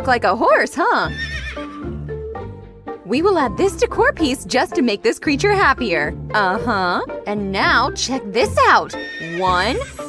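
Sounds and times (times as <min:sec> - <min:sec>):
light background music: 0:00.0 - 0:10.0
horse whinny: 0:01.0 - 0:01.9, 0:08.9 - 0:10.0.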